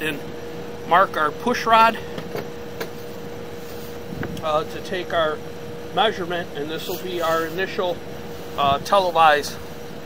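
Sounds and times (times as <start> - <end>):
background hum and hiss: 0.0 - 10.0
constant high whine: 0.0 - 10.0.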